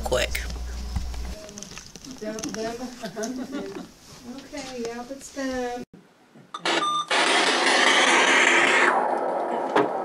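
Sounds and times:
short beep tone: 6.6s - 7.1s.

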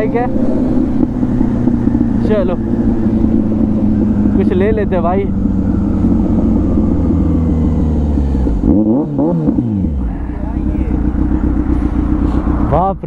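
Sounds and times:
motorcycle engine: 0.0s - 13.0s.

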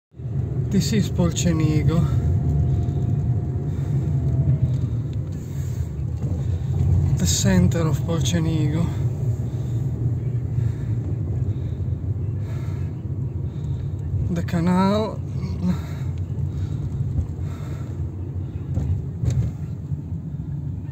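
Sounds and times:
car rumbling from inside: 0.1s - 20.9s.

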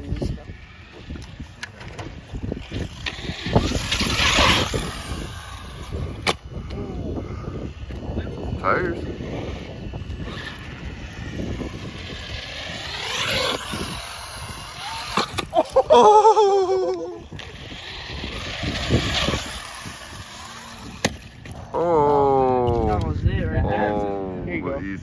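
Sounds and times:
electric motor whining: 0.0s - 23.0s
tyre noise on concrete: 11.3s - 21.8s.

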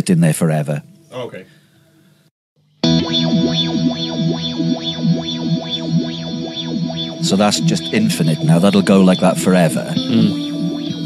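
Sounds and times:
electric guitar ambient pad: 2.8s - 11.0s
sweeping guitar tones: 2.8s - 11.0s.

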